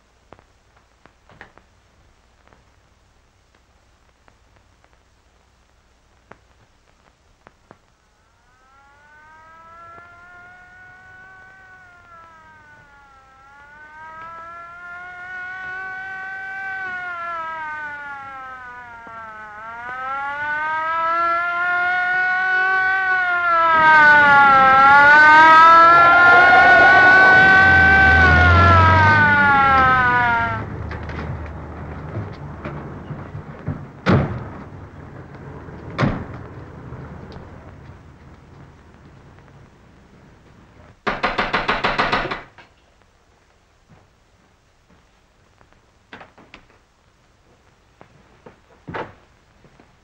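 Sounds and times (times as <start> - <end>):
police siren wailing: 8.1 - 38.8
car engine: 8.6 - 39.0.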